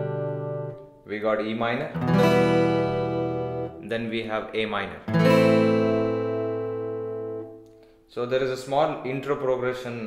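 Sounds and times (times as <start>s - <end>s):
acoustic guitar chord strum: 0.0s - 1.0s, 2.0s - 3.8s, 5.1s - 8.0s.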